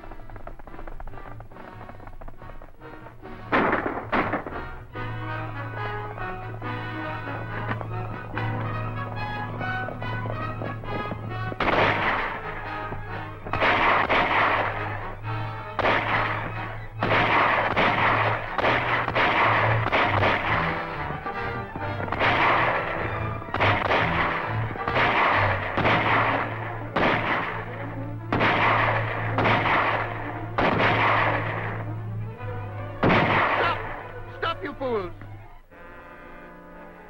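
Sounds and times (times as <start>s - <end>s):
echoing gunshots: 0.0s - 34.6s
background music: 0.0s - 37.0s.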